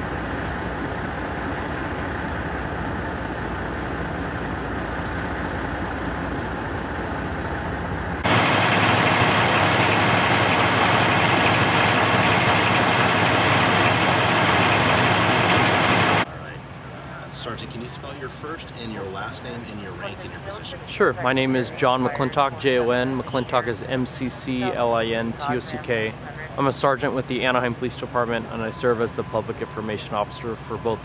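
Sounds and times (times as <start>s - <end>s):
fire engine idling: 0.0s - 31.0s.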